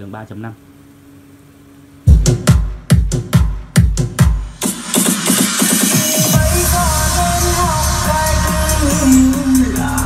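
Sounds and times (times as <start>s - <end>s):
loud electronic dance music: 2.1s - 10.0s.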